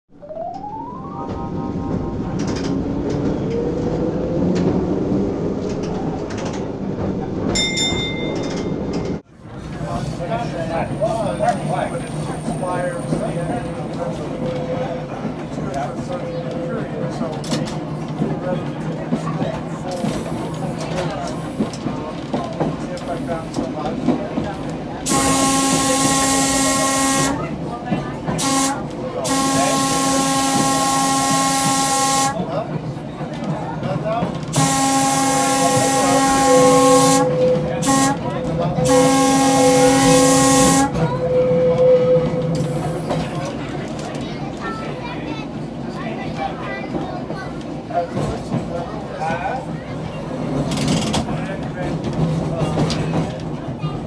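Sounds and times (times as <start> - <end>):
trolley rumbling over rails: 0.2 - 54.0.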